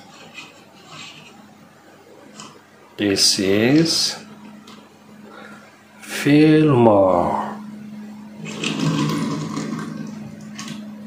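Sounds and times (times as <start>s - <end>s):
low steady hum: 0.0s - 11.0s
toy wheels scraping on table: 8.4s - 10.1s.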